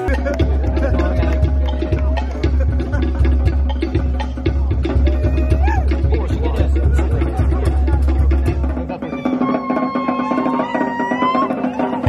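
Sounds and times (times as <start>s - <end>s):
deep bass drum: 0.0s - 12.0s
fast wooden log drum patter: 0.0s - 12.0s.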